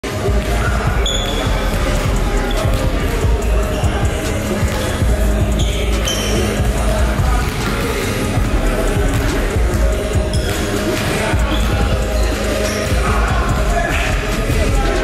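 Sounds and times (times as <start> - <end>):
background music: 0.0 - 15.0
shoe squeaks: 0.9 - 1.7, 2.4 - 6.9, 10.2 - 13.0
basketballs bouncing on hardwood: 6.5 - 12.0.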